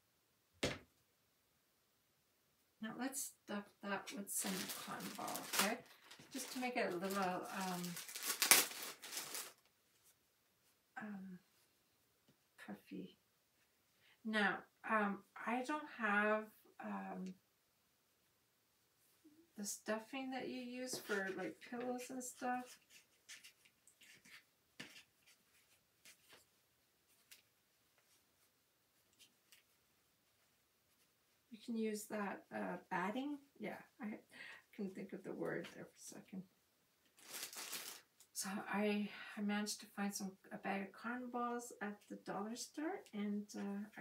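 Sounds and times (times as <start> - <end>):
plastic bag crinkling: 4.1 - 9.6, 37.2 - 38.2
fabric rustling: 4.4 - 10.2, 20.9 - 31.4, 37.2 - 38.2.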